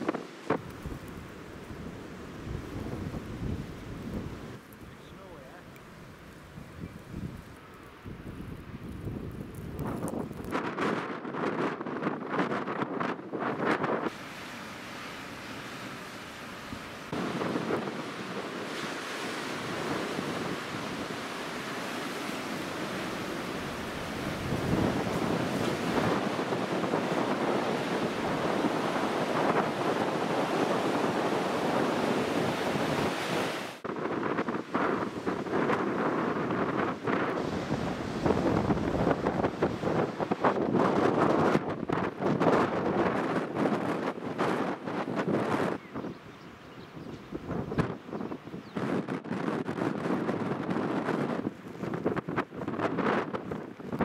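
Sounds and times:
wind blowing across microphone: 0.0s - 54.0s.

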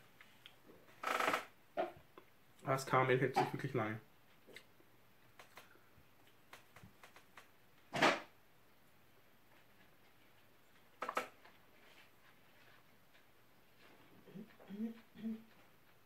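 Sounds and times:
person humming closed-mouth: 14.2s - 15.6s.

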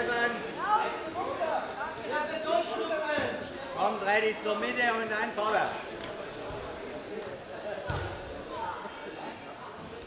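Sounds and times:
faint voices in large hall: 0.0s - 10.0s.

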